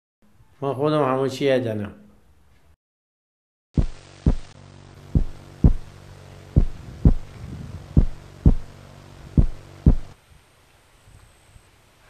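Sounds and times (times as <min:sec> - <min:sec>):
heartbeat double thumps: 0:03.8 - 0:05.9, 0:06.6 - 0:10.2
steady low hum: 0:03.8 - 0:10.2.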